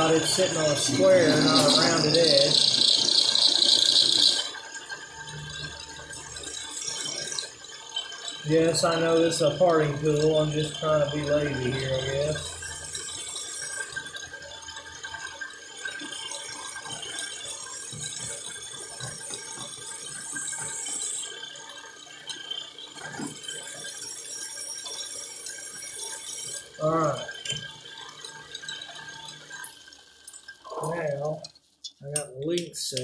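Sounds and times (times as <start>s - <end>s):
metal chips scraping and rattling: 0.0s - 5.6s
lathe motor hum: 0.0s - 30.0s
high cutting whine: 0.0s - 31.5s.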